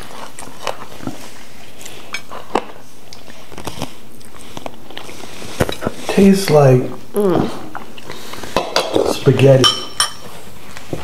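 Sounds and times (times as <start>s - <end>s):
soft chewing: 0.0s - 8.6s
room noise: 0.0s - 11.0s.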